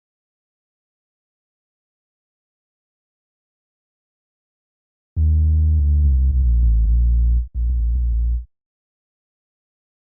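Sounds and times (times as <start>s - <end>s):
deep sub-bass synth note: 5.2s - 8.5s.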